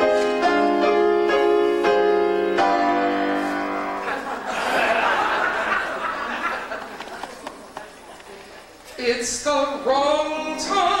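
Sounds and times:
murmur of audience voices: 2.3 - 9.9.

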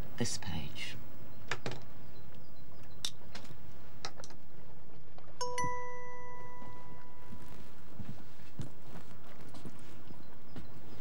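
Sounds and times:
struck chime ringing: 5.4 - 7.4.

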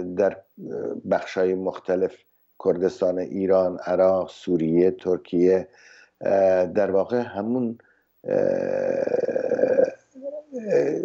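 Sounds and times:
man's creaky hesitation sound: 8.3 - 11.0.

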